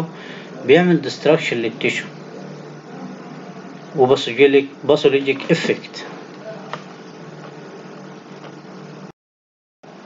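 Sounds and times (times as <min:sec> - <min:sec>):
steady background hiss: 0:00.0 - 0:09.1.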